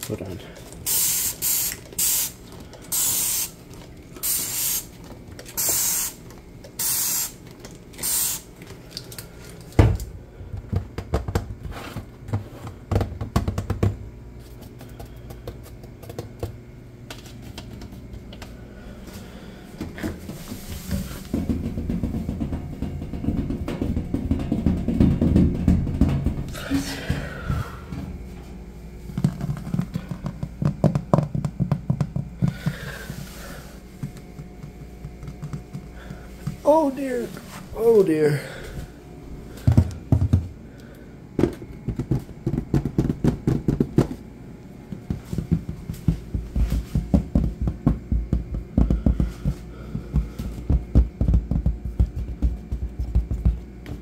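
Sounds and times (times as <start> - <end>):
aerosol can spraying: 0.8 - 3.6, 4.2 - 4.9, 5.6 - 6.2, 6.8 - 7.4, 8.0 - 8.5.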